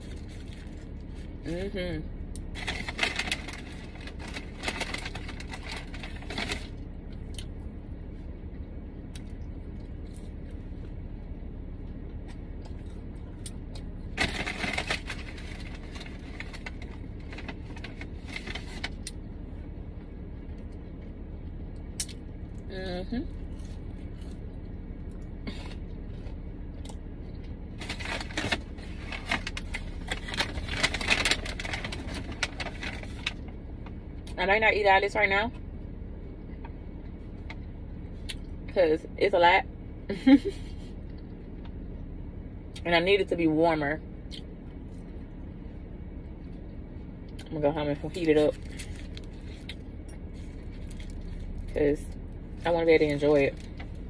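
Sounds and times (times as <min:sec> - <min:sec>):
low car rumble: 0:00.0 - 0:54.0
paper wrapper rustling: 0:02.6 - 0:06.8, 0:14.2 - 0:19.0, 0:27.8 - 0:33.5, 0:48.3 - 0:51.7.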